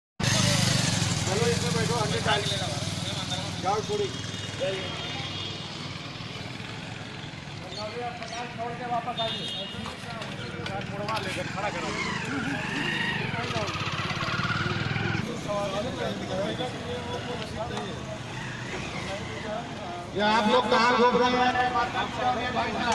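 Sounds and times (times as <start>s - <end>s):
motorcycle engine idling: 0.2s - 8.4s, 9.9s - 19.0s
voices: 0.2s - 22.9s.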